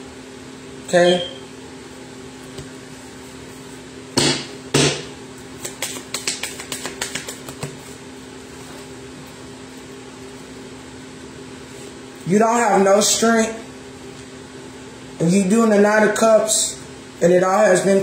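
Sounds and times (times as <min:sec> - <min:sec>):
card deck slaps: 0:05.6 - 0:07.8.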